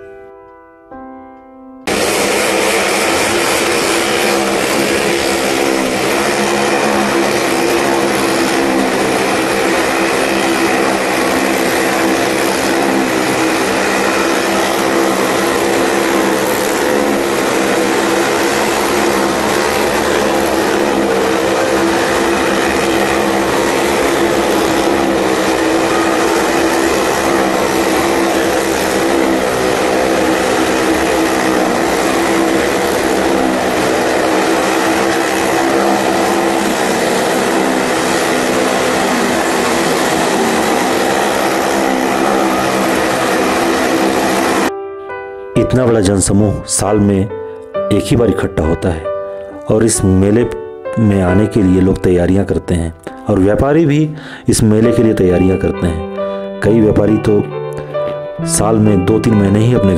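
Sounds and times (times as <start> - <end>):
motorcycle engines running: 1.9 - 44.7.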